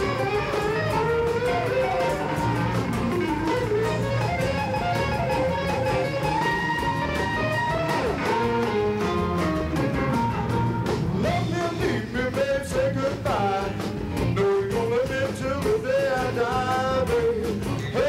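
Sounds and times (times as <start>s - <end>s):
harmonica bending notes: 0.0s - 11.9s
blues band playing: 0.0s - 18.0s.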